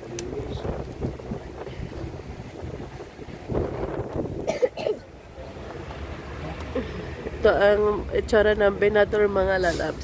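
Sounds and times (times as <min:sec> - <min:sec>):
wind buffeting microphone: 0:00.0 - 0:04.6
bus engine rumble: 0:00.0 - 0:10.0.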